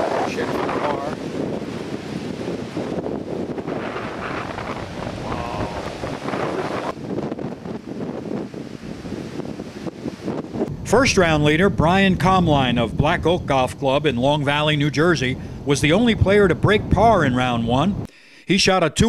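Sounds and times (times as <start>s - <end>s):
strong wind on microphone: 0.0s - 18.1s.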